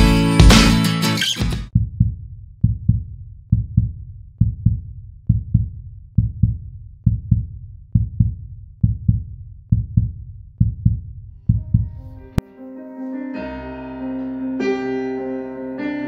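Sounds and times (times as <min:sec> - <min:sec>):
heartbeat thumps: 0:01.8 - 0:12.4.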